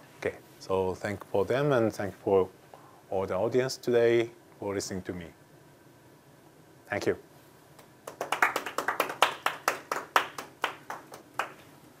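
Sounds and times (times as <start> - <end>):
audience applauding: 8.0 - 11.6.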